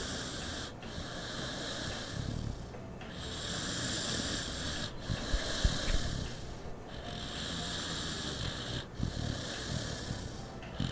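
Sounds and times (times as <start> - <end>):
dog snoring: 0.0 - 10.9.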